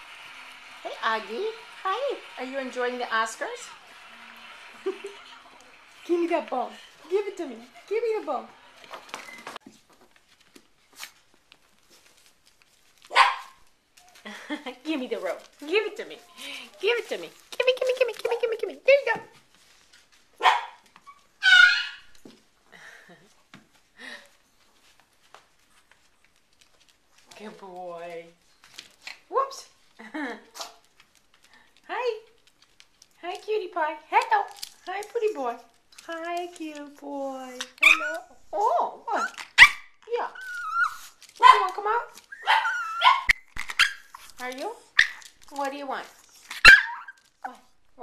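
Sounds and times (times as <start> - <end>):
dog yipping: 13.1 - 13.6, 20.4 - 22.2, 37.6 - 38.3, 39.1 - 44.3, 46.5 - 47.2
small dog barking: 13.1 - 13.6, 20.4 - 20.8, 41.4 - 41.7, 42.4 - 44.1, 46.6 - 47.1.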